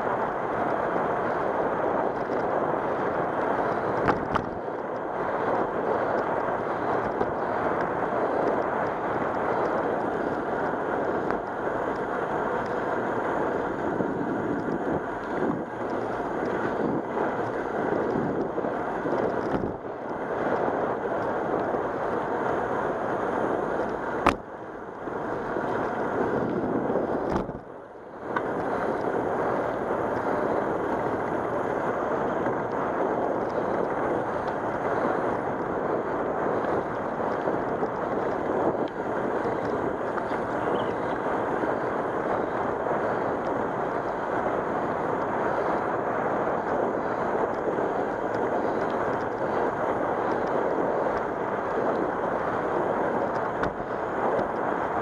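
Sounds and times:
tyre noise on asphalt: 0.0 - 55.0
wind on microphone: 0.0 - 55.0.

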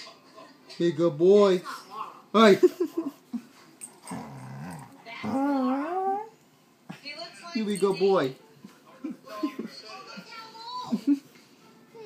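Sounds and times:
dog play growl: 3.8 - 6.3.

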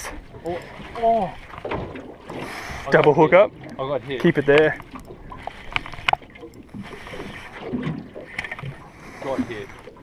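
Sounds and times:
wind and water wash: 0.0 - 10.0
fishing gear handling noise: 3.6 - 7.6
sharp clicks: 4.4 - 6.7.

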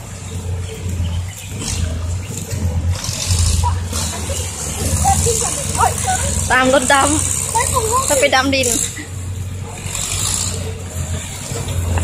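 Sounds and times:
dump truck engine rumble: 0.0 - 12.0.

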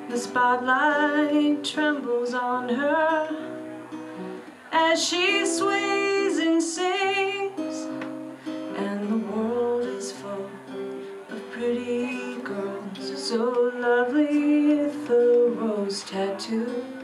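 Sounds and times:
woman singing: 0.0 - 3.6, 4.6 - 17.0
acoustic guitar strummed: 0.0 - 17.0.

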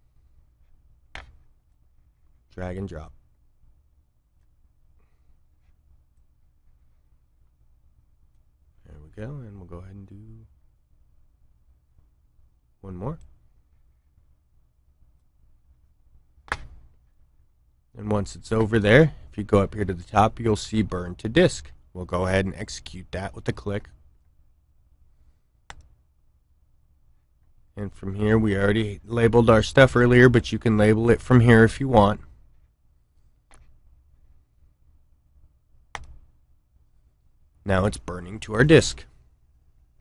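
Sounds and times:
faint low hum: 0.0 - 40.0
computer mouse click: 35.9 - 36.3.

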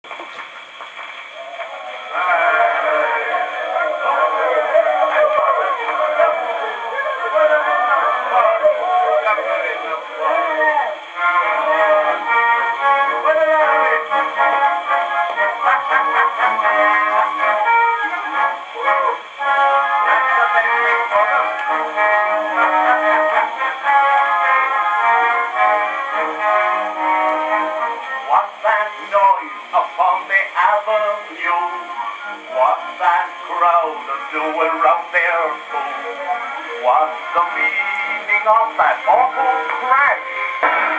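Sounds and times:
ragtime record on gramophone: 0.0 - 40.9.

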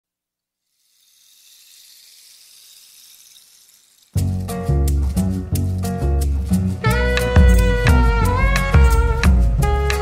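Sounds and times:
high-pitched rushing hiss: 0.7 - 4.2.

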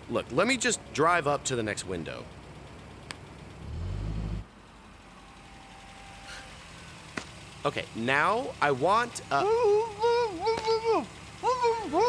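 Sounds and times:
car engine revving: 3.4 - 12.0.

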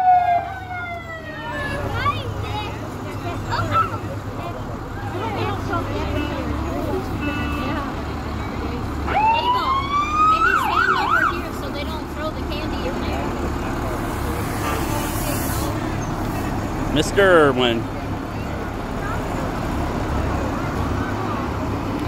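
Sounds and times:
fire truck siren wailing: 0.0 - 2.2, 9.0 - 11.9
truck engines running: 0.0 - 22.0.

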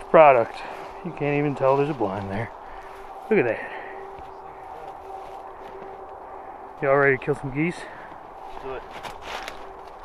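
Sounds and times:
dry stalks rustling and crunching: 0.0 - 10.0.

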